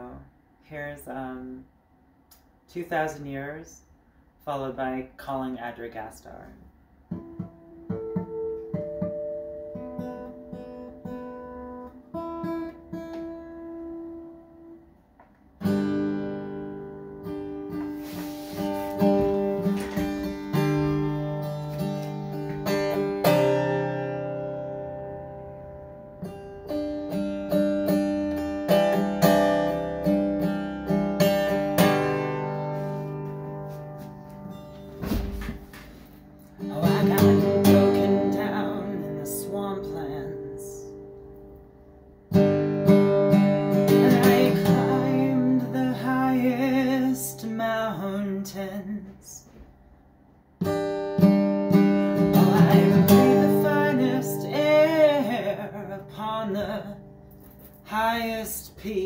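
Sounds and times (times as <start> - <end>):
acoustic guitar picking and strumming: 4.4 - 49.8, 50.5 - 59.0.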